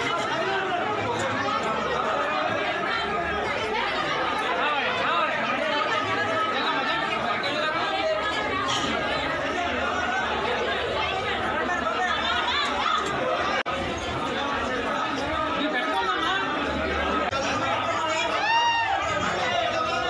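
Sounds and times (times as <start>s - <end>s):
crowd babble: 0.0s - 20.0s.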